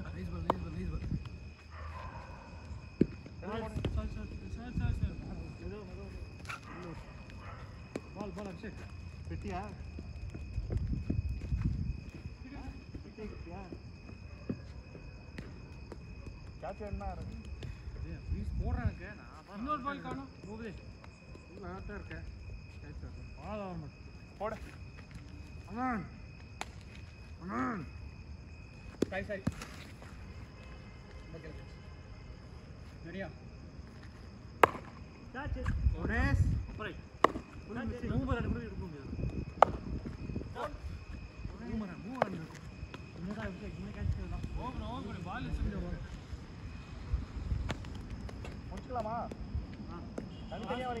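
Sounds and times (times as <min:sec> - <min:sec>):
steady high-pitched whine: 0:00.0 - 0:51.0
cricket bat striking ball: 0:34.6 - 0:35.0, 0:37.2 - 0:37.6, 0:39.6 - 0:39.9.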